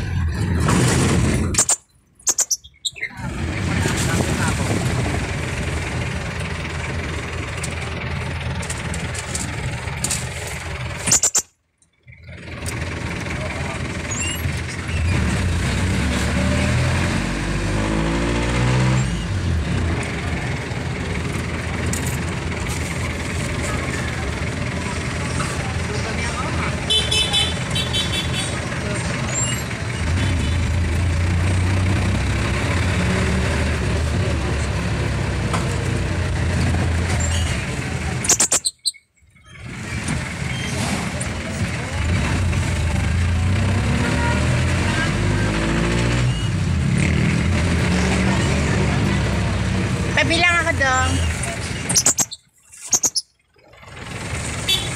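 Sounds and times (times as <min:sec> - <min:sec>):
vehicle engine and road noise: 0:00.0 - 0:54.9
horn toots: 0:26.8 - 0:28.7, 0:54.6 - 0:54.9.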